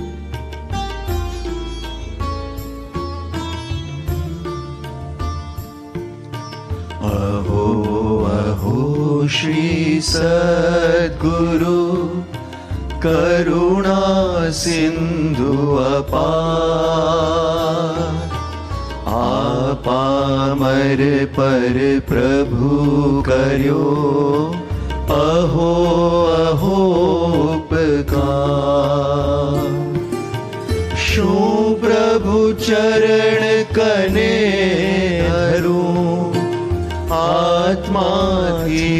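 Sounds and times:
men singing devotional chant: 7.0s - 30.0s, 31.0s - 38.9s.

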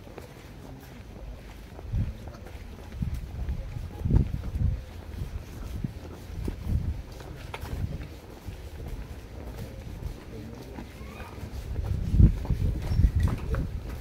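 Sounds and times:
footsteps on concrete: 0.0s - 14.0s
faint voice: 7.2s - 13.9s.

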